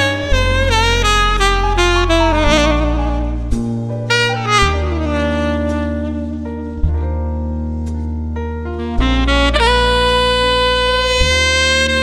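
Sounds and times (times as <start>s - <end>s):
tenor saxophone melody: 0.0s - 7.6s, 8.7s - 12.0s
backing track of bass and chords: 0.0s - 12.0s.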